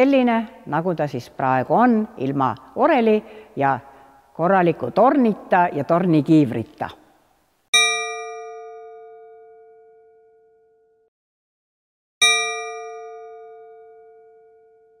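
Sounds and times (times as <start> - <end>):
struck bell ringing: 7.8 - 10.2, 12.2 - 15.0.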